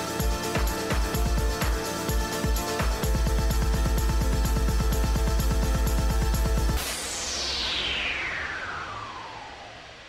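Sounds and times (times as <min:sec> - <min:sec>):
electronic soundtrack: 0:00.0 - 0:10.0
whoosh sweeping down: 0:06.8 - 0:10.0.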